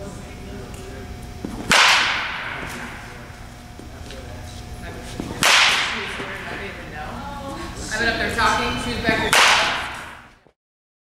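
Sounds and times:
baseball bat hitting ball: 1.4 - 3.5, 5.3 - 6.7, 9.1 - 10.3.

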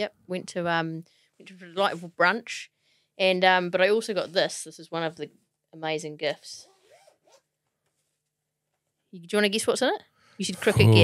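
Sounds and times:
faint zipper on fabric bag: 6.6 - 8.1.

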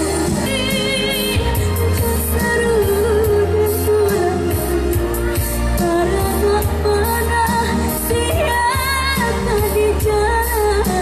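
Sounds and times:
amplified pop backing music: 0.0 - 11.0
woman singing through microphone: 0.0 - 11.0.

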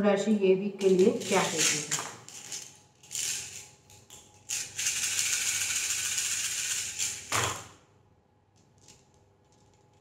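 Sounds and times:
small pieces rattling in hands: 0.8 - 7.5
pieces clattering on table: 0.8 - 7.8.

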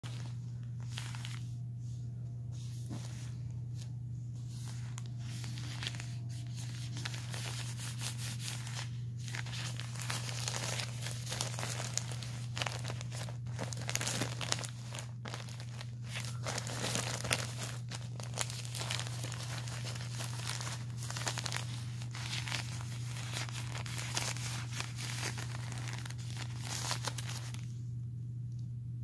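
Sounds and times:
plastic sheet crinkling: 0.0 - 1.8, 2.6 - 27.8
steady low hum: 0.0 - 29.0.

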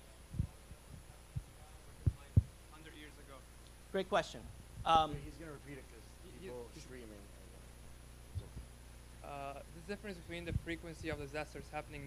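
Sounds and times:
steady low hum: 0.0 - 12.0
soft thumps on a microphone: 0.3 - 2.6.

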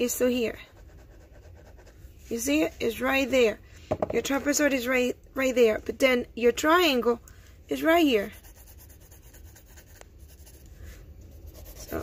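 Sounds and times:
pencil shading on paper: 8.2 - 10.6, 11.4 - 12.0.

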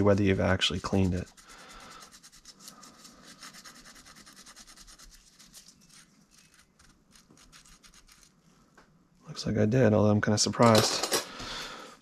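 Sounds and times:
pipe cleaner scrubbing inside tube: 0.0 - 8.3.

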